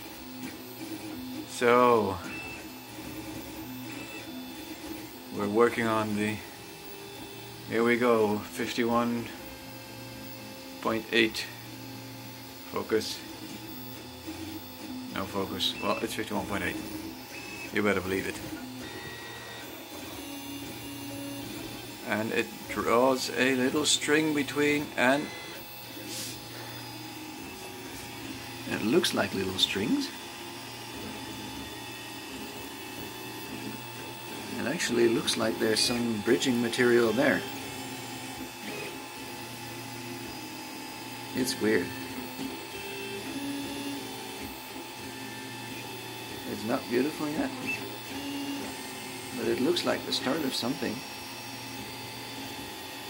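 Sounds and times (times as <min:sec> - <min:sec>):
printer stepper motors whining: 0:00.0 - 0:53.0.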